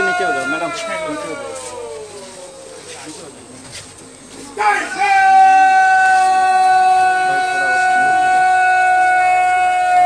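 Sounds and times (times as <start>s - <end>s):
long shouted parade command: 4.6s - 10.0s.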